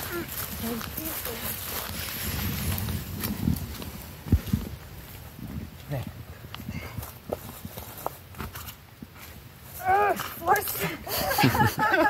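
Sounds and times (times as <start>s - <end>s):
footsteps crunching through leaves: 0.0s - 5.4s.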